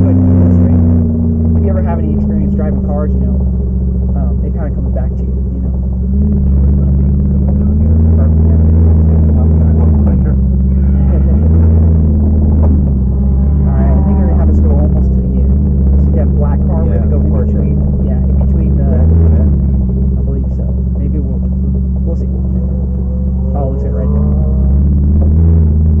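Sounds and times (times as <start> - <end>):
car engine low hum inside cabin: 0.0 - 26.0.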